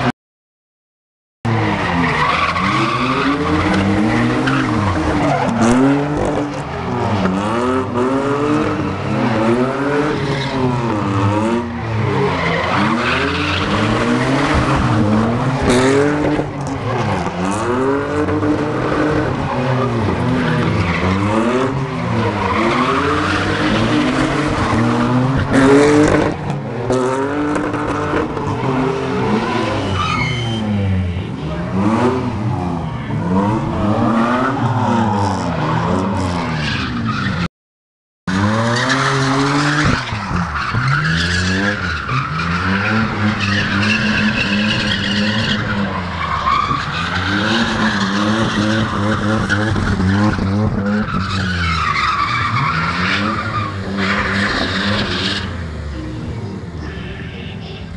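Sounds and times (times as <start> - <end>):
car engines revving: 1.5 - 37.5, 38.3 - 57.9
tyres squealing: 29.6 - 30.8.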